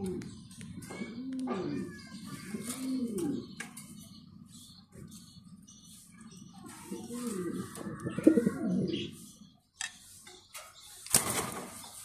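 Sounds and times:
pigeon cooing: 0.0s - 3.6s, 6.8s - 9.2s.

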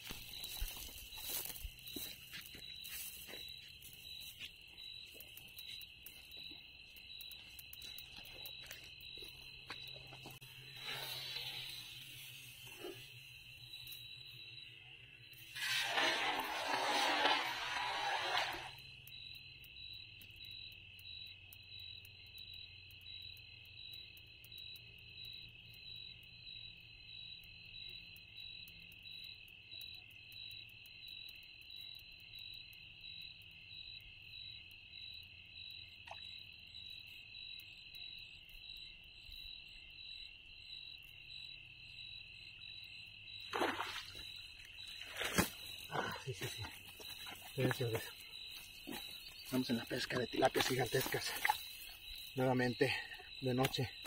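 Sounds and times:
crickets chirping: 0.0s - 54.0s
net splashing into water: 15.5s - 18.8s, 43.5s - 46.0s.

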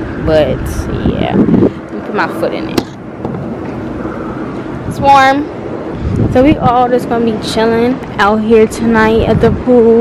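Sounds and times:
outdoor background rumble: 0.0s - 10.0s
wind on microphone: 0.0s - 10.0s.

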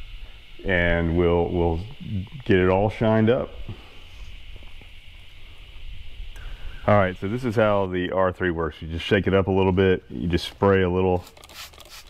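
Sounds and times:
low rumble and faint hiss: 0.0s - 11.3s
man speaking: 0.6s - 3.8s, 6.8s - 11.3s.

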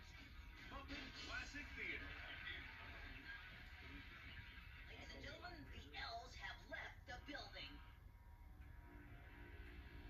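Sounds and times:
faint music: 0.0s - 10.0s
low steady hum: 0.0s - 10.0s.

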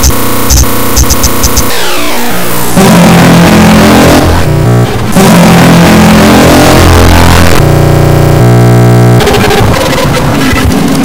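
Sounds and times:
buzzing chords: 0.0s - 11.0s
distorted electronic noise: 0.0s - 11.0s.

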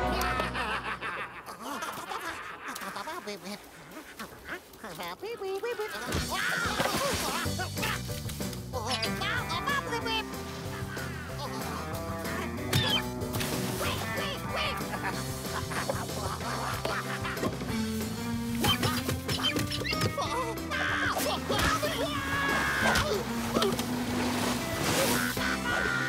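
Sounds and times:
cartoon squawks and shouts: 12.7s - 13.1s, 18.6s - 23.7s.

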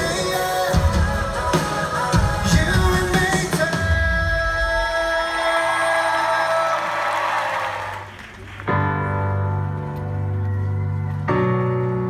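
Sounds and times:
keyboard chord: 8.7s - 12.0s.

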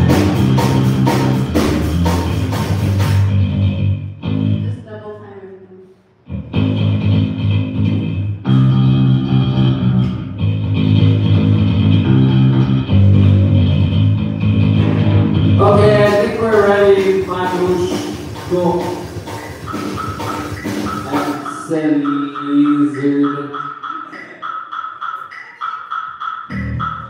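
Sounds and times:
drum kit: 0.0s - 4.5s, 6.3s - 27.0s
bass guitar: 0.0s - 4.8s, 6.3s - 21.6s, 26.5s - 27.0s
electric guitars: 6.3s - 21.4s
pitch-bending tone: 6.3s - 27.0s.

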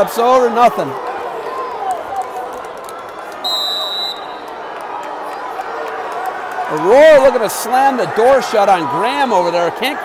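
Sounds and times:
gym crowd noise: 0.0s - 10.0s
referee whistle blast: 3.4s - 4.4s.

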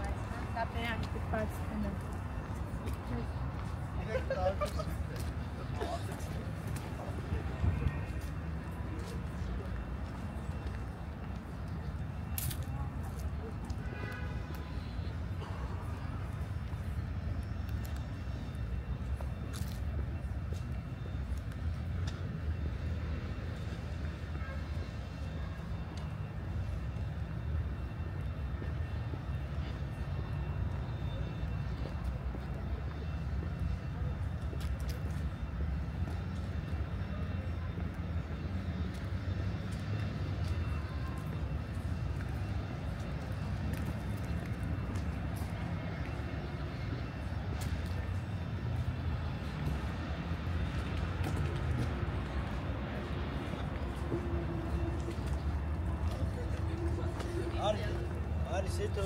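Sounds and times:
city road traffic rumble: 0.0s - 59.0s.

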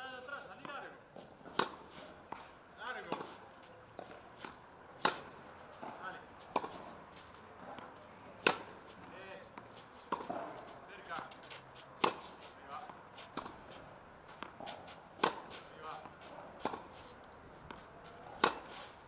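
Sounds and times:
tennis ball hit by racket: 0.5s - 19.0s.

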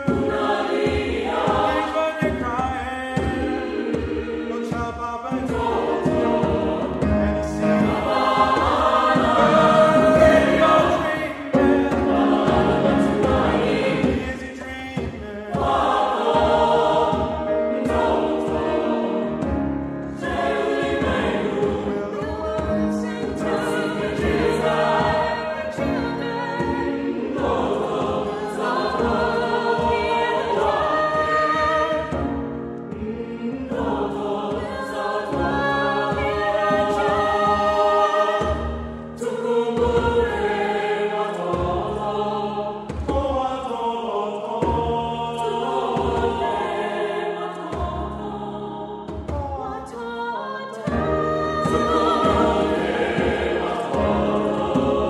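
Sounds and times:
djembe drumming: 0.0s - 43.4s, 50.9s - 55.0s
choir singing: 0.0s - 55.0s
piano: 0.0s - 55.0s.

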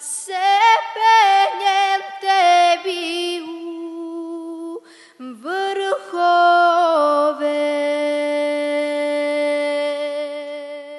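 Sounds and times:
woman singing unaccompanied: 0.0s - 10.9s.

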